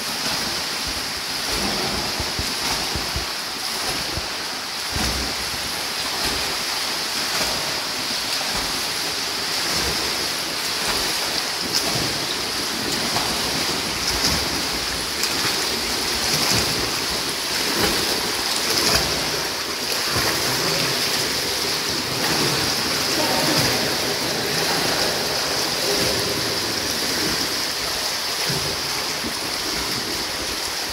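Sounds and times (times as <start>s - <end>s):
pool hall hiss: 0.0s - 30.9s
swimmer splashing water: 0.0s - 30.9s.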